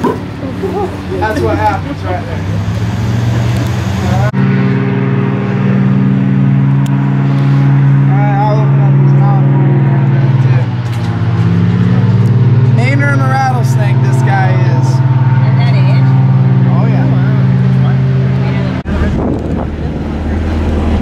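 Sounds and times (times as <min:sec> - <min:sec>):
loud low motor hum: 0:00.0 - 0:21.0.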